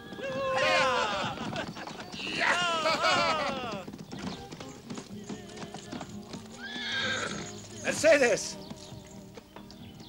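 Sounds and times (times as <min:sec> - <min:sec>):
horse whinnying: 0:00.0 - 0:04.3, 0:06.5 - 0:08.4
hooves clopping on ground: 0:00.0 - 0:10.0.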